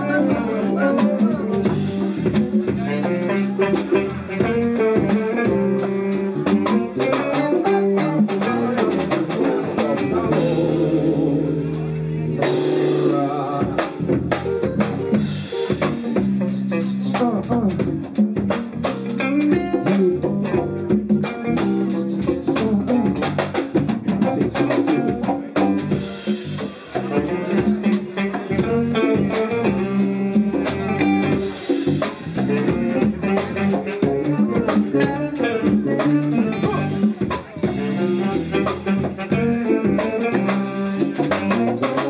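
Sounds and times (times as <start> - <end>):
drum kit beat: 0.0 - 42.0
live band jamming: 0.0 - 42.0.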